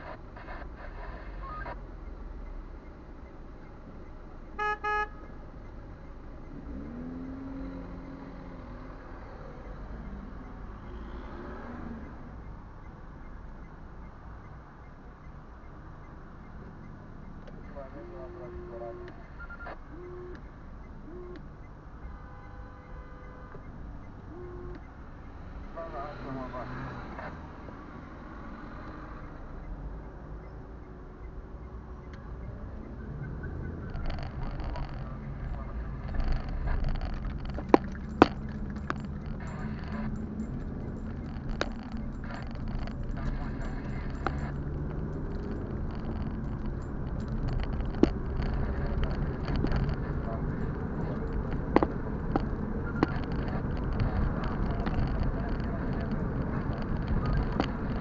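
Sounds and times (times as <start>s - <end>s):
car engine hum and road rumble: 0.0s - 58.0s
car idling: 33.2s - 58.0s.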